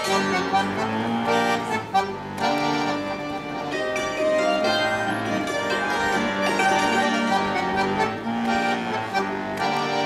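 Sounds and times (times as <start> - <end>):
button accordion: 0.0 - 10.0
hammered dulcimer: 0.0 - 10.0.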